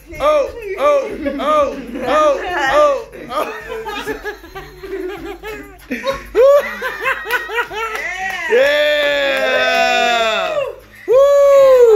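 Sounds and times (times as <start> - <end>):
people laughing: 0.0 - 10.7.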